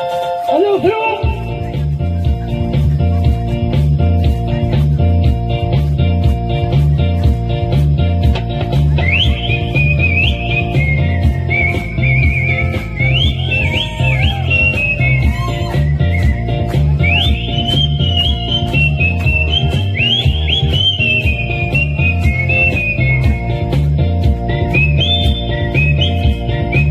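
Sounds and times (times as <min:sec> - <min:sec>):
pop backing track: 0:00.0 - 0:26.9
melodic whistling: 0:09.0 - 0:23.8, 0:24.5 - 0:26.9.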